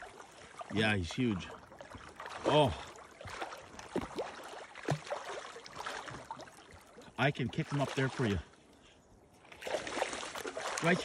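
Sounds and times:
fish splashing in water: 0:01.5 - 0:07.0, 0:09.5 - 0:11.0
water washing: 0:09.6 - 0:11.0.

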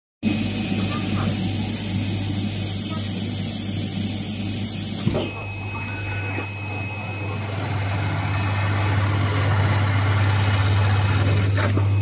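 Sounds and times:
sewing machine hum and hiss: 0:00.2 - 0:05.2, 0:06.7 - 0:12.0.

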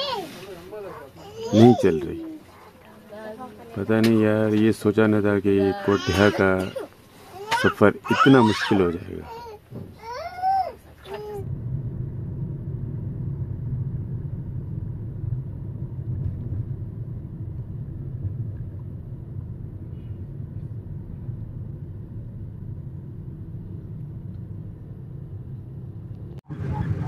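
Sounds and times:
vehicle engine and road noise: 0:10.7 - 0:27.0.

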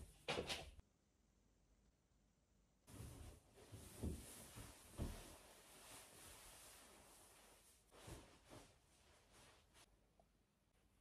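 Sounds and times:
faint soft knocks or rustles: 0:02.9 - 0:06.1.

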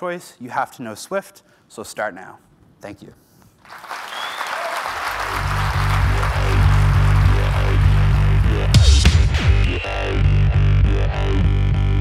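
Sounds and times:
audience applauding: 0:03.6 - 0:09.6
electronic music with heavy bass: 0:05.1 - 0:12.0.

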